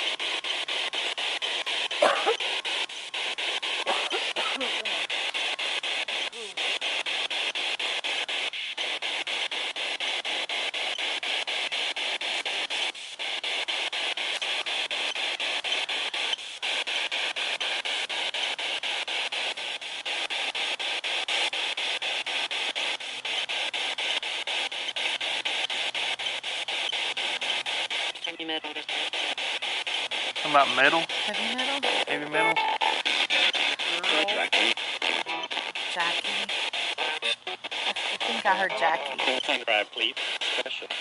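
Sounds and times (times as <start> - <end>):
radio static pulsing: 0.0 - 41.0
snatch of broadcast voice: 3.6 - 6.8, 30.3 - 41.0.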